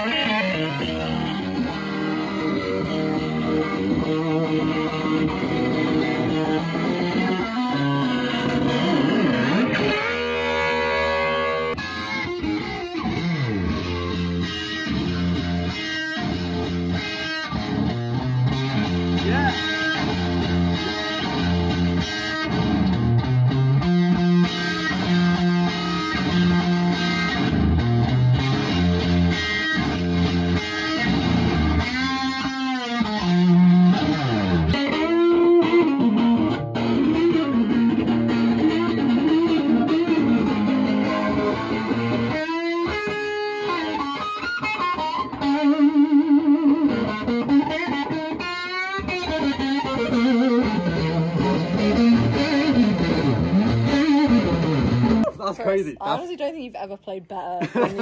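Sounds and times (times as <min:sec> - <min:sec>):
electric guitar lead with bends: 0:00.0 - 0:56.4.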